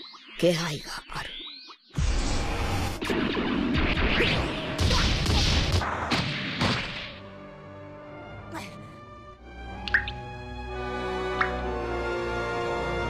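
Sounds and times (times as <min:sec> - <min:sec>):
background music with held notes: 0:07.2 - 0:13.0.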